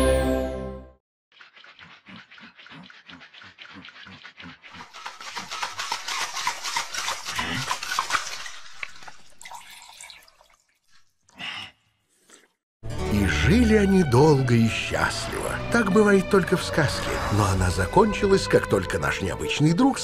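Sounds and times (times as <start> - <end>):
metal cocktail shaker shaking: 3.0 - 10.4.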